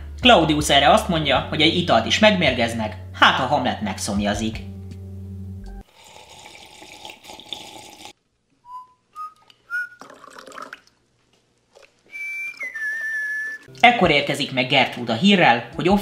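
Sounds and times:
man whistling: 8.6 - 10.3, 12.1 - 13.7.

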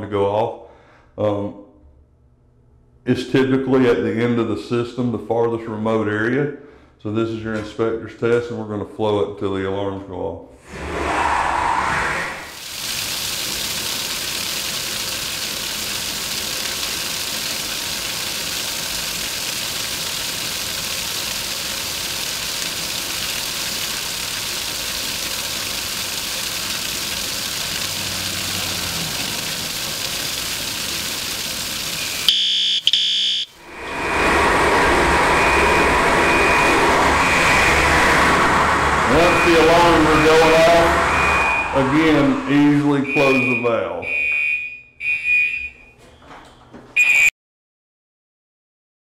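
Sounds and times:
water gushing onto concrete: 12.5 - 32.8, 39.1 - 40.9
fire alarm high tone: 32.0 - 33.6, 35.3 - 38.1, 39.1 - 46.0, 47.0 - 47.3.

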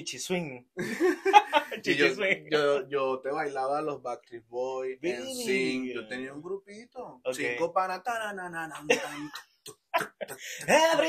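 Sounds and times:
sharp cough: 8.9 - 10.8.

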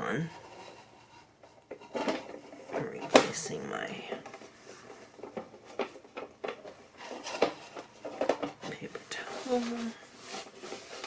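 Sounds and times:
paper towel rustling: 8.9 - 11.0.

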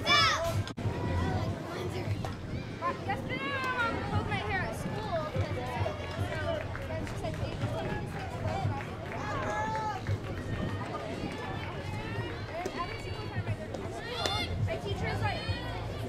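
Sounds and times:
voices calling out and cheering: 0.0 - 16.0.

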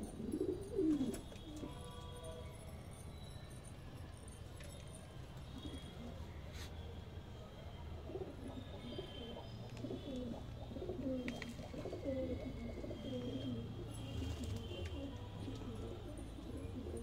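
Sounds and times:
pigeons cooing: 0.0 - 1.8, 8.0 - 17.0.

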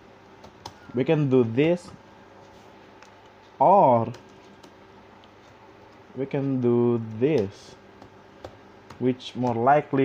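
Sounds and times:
keyboard typing: 0.4 - 2.0, 2.9 - 9.6.

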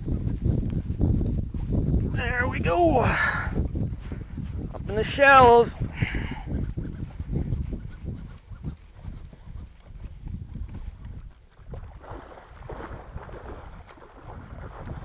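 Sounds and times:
wind buffeting microphone: 0.0 - 15.0
water splashing around boat: 10.6 - 15.0.

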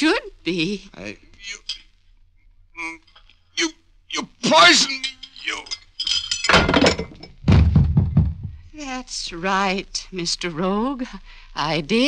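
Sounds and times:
crash: 4.5 - 8.6
body thudding on floor: 6.8 - 8.6.

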